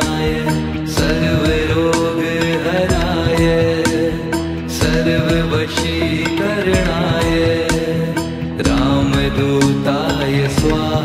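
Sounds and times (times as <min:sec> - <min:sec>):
devotional music: 0:00.0 - 0:11.0
percussion beat: 0:00.0 - 0:11.0.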